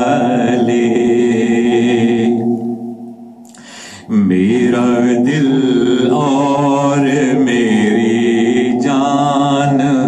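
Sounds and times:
man singing chant-like melody: 0.0 - 2.8, 3.9 - 10.0.

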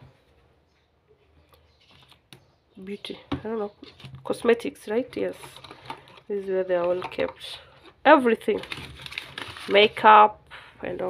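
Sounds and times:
plastic containers clicking: 3.3 - 9.4.

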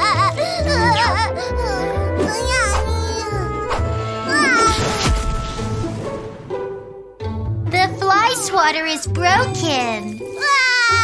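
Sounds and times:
children's background music: 0.0 - 11.0
cartoon swat: 3.7 - 6.2.

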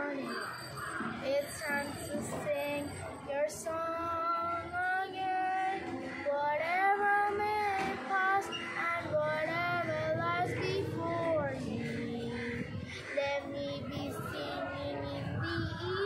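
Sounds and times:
girl singing: 1.2 - 16.0.

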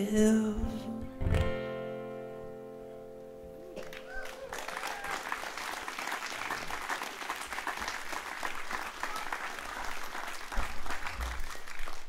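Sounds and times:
acoustic guitar chord ringing: 0.0 - 3.8.

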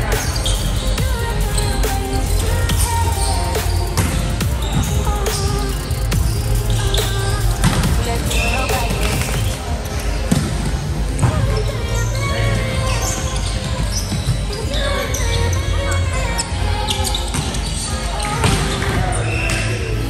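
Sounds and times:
music: 0.0 - 20.0
players' voices: 0.0 - 20.0.

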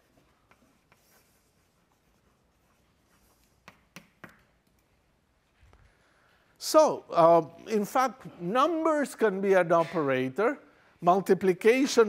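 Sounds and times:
chalk scratching on blackboard: 0.0 - 4.2
chalk tapping: 0.0 - 4.9.

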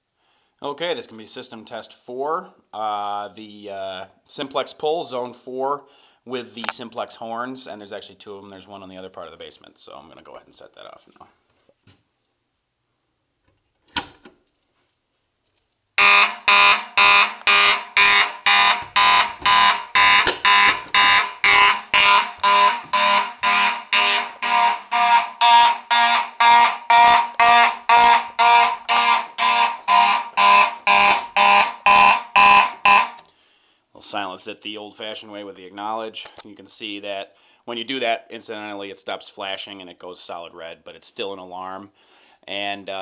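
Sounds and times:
fire alarm pull station click: 16.0 - 25.7
pulsing fire alarm horns: 16.0 - 33.2.

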